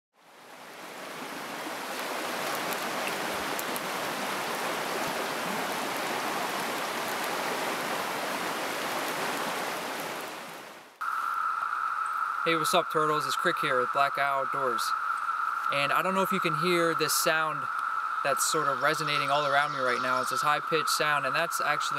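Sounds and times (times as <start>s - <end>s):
stream rushing over rocks: 0.2s - 11.5s
cicada chorus ringing: 11.0s - 21.9s.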